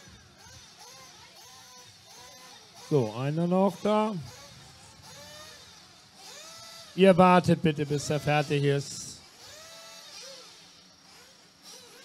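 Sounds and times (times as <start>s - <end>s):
faint rc car motor: 0.0s - 12.0s.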